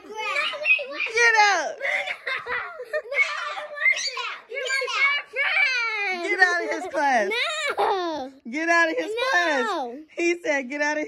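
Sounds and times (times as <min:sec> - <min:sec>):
children calling out: 0:00.0 - 0:06.3
children laughing: 0:00.0 - 0:08.4.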